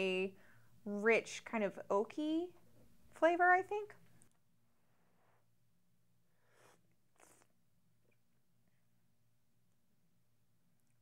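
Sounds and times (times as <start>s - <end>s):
person sipping hot coffee: 6.4s - 7.6s.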